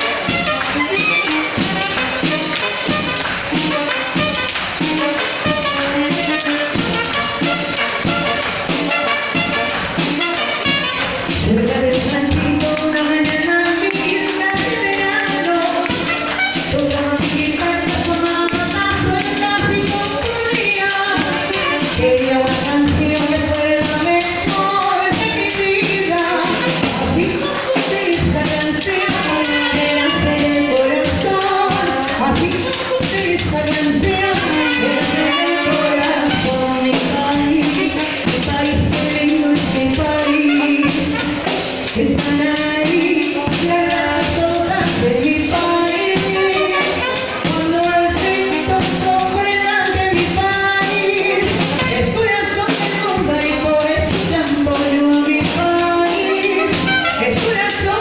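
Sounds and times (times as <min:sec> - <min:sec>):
clarinets playing melody: 0:00.0 - 0:11.3, 0:34.2 - 0:36.8, 0:56.3 - 0:57.4
military band playing: 0:00.0 - 0:58.0
percussion steady beat: 0:00.0 - 0:58.0
woman singing into a microphone: 0:04.9 - 0:07.4, 0:11.3 - 0:58.0.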